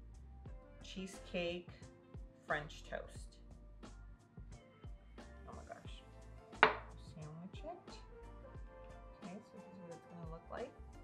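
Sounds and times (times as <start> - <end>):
faint background music: 0.0 - 11.0
knock on wooden cutting board: 6.6 - 6.9.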